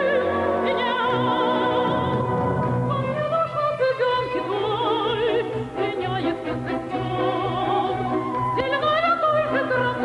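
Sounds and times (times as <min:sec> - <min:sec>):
orchestra playing: 0:00.0 - 0:08.7
operatic soprano singing: 0:00.0 - 0:10.0.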